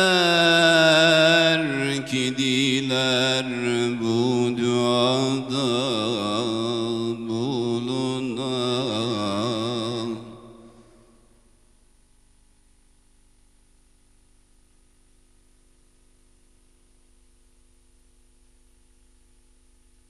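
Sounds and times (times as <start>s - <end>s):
man singing a hymn: 0.0s - 11.0s.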